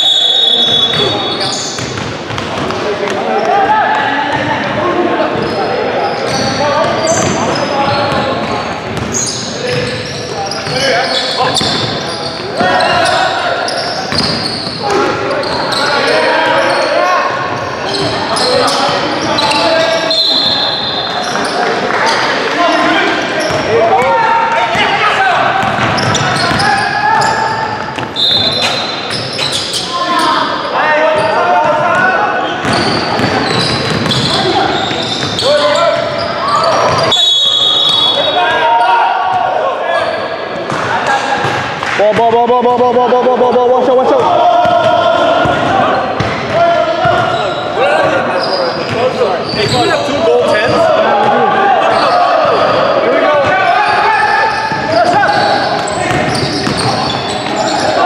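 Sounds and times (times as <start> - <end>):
voices calling out: 2.5 - 58.0
high-pitched shoe squeaks: 9.1 - 17.1, 17.8 - 22.2, 26.0 - 30.5, 32.4 - 38.4, 47.2 - 50.1, 53.8 - 58.0
basketball bouncing on hardwood: 32.6 - 34.2.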